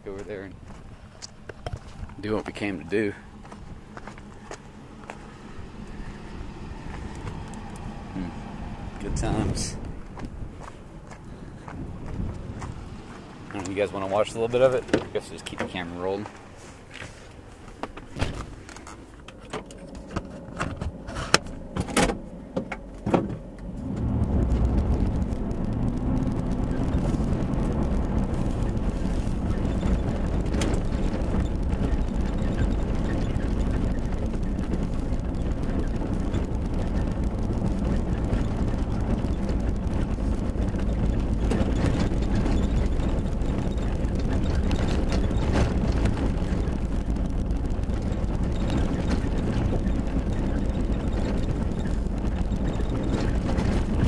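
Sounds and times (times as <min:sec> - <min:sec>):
truck engine and tyres rumbling: 0:00.0 - 0:54.0
sharp knocks and clicks: 0:27.9 - 0:54.0.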